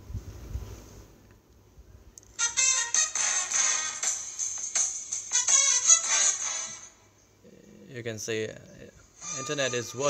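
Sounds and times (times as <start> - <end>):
music from phone loudspeaker: 2.4 - 7.0, 9.2 - 10.0.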